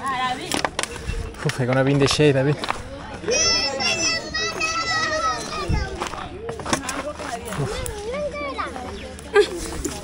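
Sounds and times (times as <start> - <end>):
children shouting: 3.2 - 6.0.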